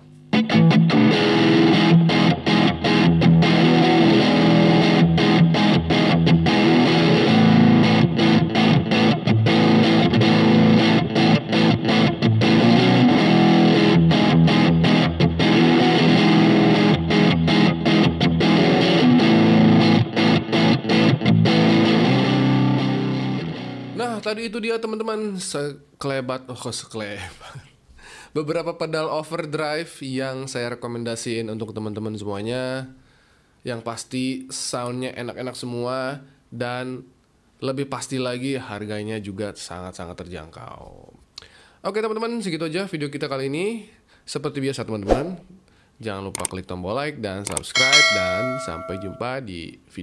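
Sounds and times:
overdriven electric guitar riffs: 0.0 - 24.0.

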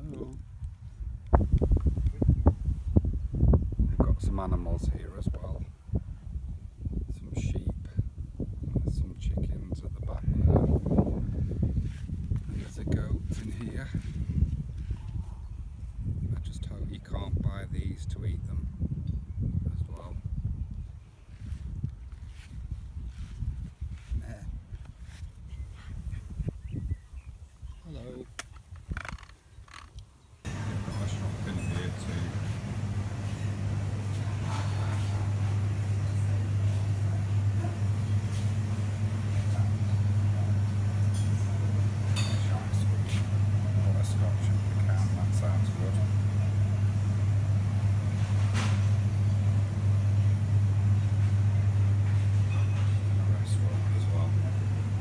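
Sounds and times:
low rumble on microphone: 0.0 - 27.9
refrigeration electrical hum: 30.4 - 55.0.

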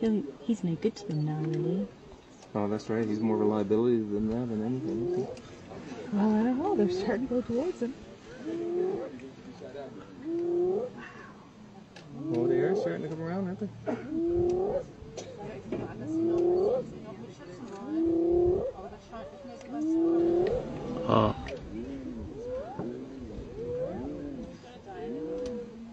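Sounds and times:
wailing animal call: 16.1 - 17.0, 17.8 - 21.4, 22.0 - 25.8.

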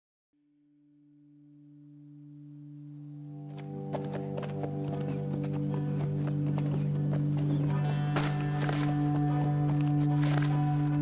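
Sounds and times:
low music drone: 0.7 - 11.0
horses' hooves clattering: 3.9 - 11.0.

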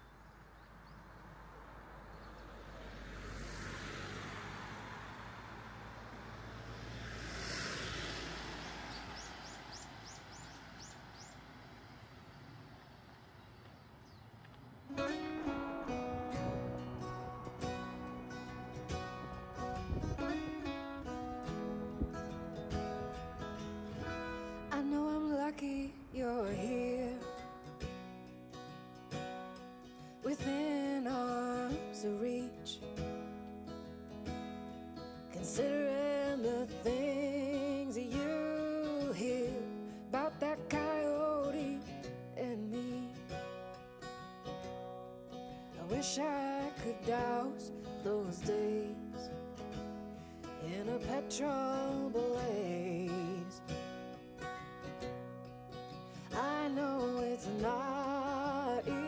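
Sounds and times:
bird chirps: 0.0 - 1.1, 8.6 - 12.4, 13.3 - 14.9
vehicles passing: 0.0 - 59.0
acoustic guitar song with voice: 4.1 - 11.4, 14.8 - 59.0.

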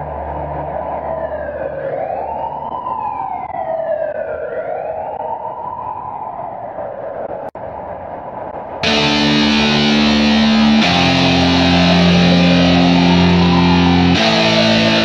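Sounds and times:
siren wailing: 0.0 - 7.5, 8.8 - 15.0
steady rushing background: 5.8 - 15.0
low drone: 7.7 - 15.0.

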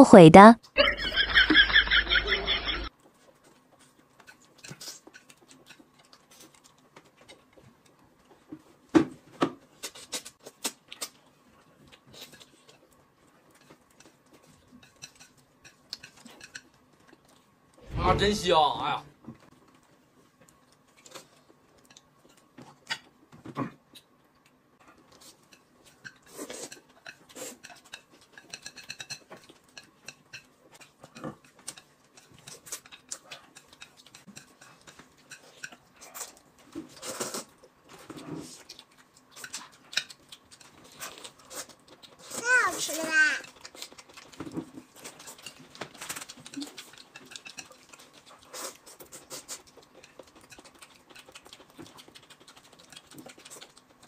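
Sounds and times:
noodles slurped and chewed: 3.0 - 8.9, 19.4 - 54.0
utensils clicking against bowls: 25.5 - 36.3, 45.0 - 48.4.

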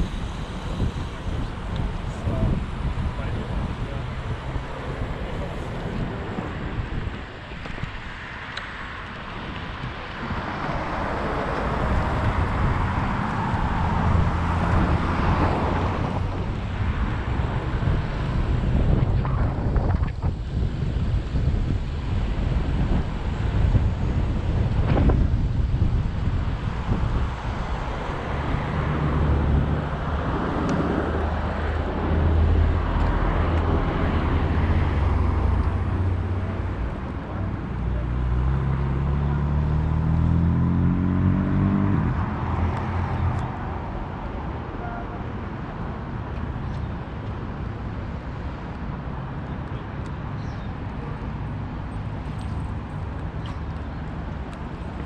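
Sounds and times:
city traffic: 0.0 - 55.0
wind rumbling on microphone: 0.0 - 55.0
vehicle engine revving: 38.0 - 43.4.

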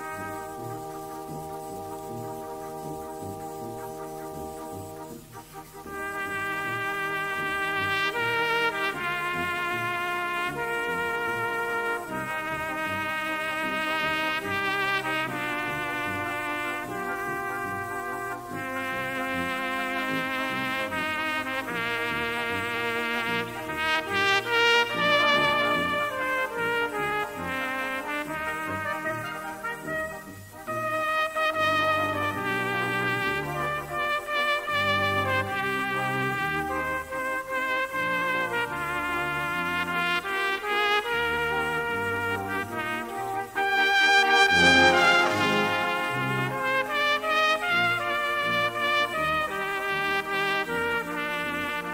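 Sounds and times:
brass band accompaniment: 0.0 - 51.9
solo cornet melody: 0.0 - 51.9.

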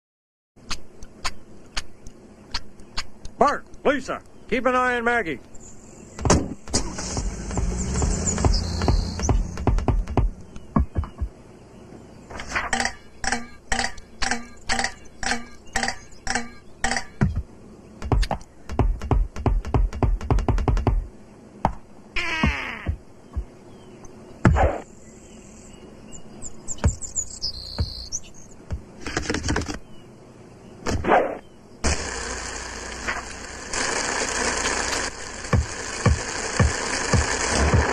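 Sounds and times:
sharp clicks: 0.6 - 4.4, 6.2 - 11.3
cartoon car engine rumble: 6.1 - 21.1, 31.8 - 37.9
sharp knocks: 6.2 - 11.3, 12.6 - 21.8
falling pitched glide: 6.8 - 10.3.

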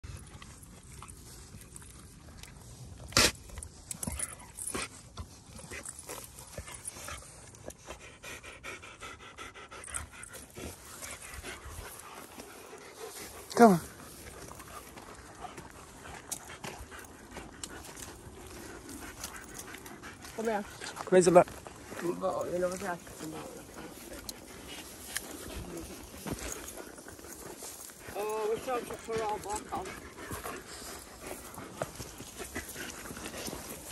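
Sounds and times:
dog panting: 0.0 - 33.9
footsteps on dirt path: 9.8 - 33.9
dry grass rustling: 17.2 - 33.9.

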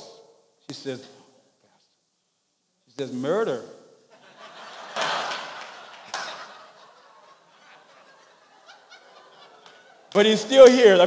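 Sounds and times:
audience laughter: 4.1 - 10.2.

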